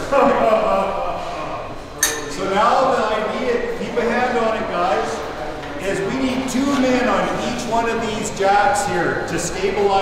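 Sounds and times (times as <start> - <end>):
men talking: 0.1 - 10.0
sharp metallic clink: 2.0 - 2.4.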